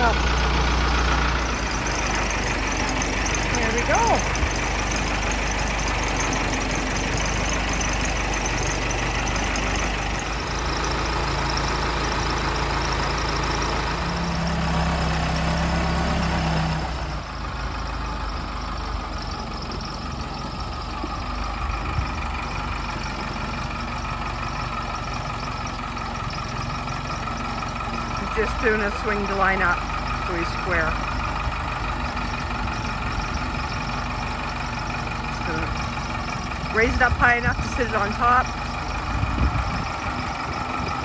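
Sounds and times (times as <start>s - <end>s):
backhoe diesel engine running: 0.0s - 41.0s.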